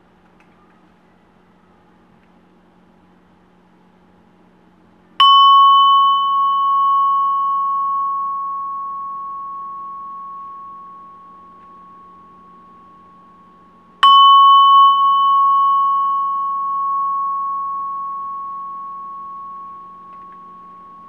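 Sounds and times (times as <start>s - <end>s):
singing bowl ringing: 5.2s - 21.0s
singing bowl strike: 5.2s - 21.0s.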